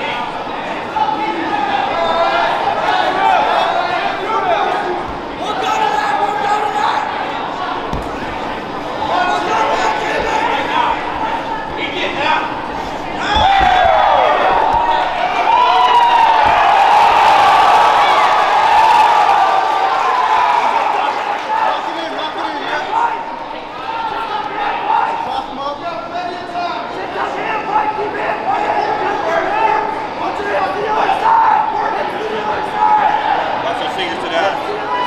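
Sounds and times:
crowd shouting and cheering: 0.0s - 35.0s
low thuds: 7.6s - 18.4s.

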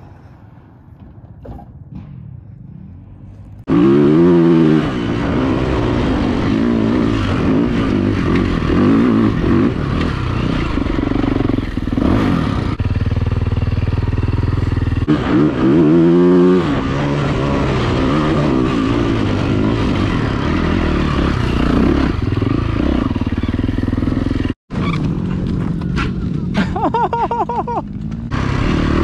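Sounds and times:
vehicle engine revving hard: 3.7s - 12.8s, 15.0s - 23.2s, 28.3s - 29.0s.

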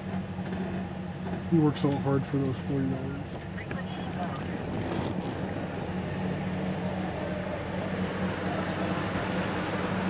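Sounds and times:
car engine humming: 0.0s - 10.0s.

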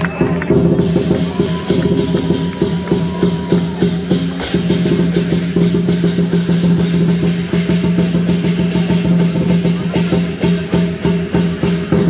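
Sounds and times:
cymbals clashing: 0.0s - 12.0s
drum beating fast rhythm: 0.0s - 12.0s.

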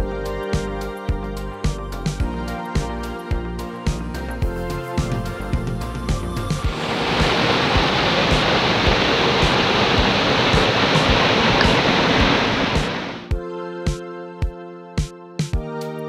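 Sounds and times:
background music with beat: 0.0s - 16.0s
stream rushing over rocks: 6.7s - 13.3s.

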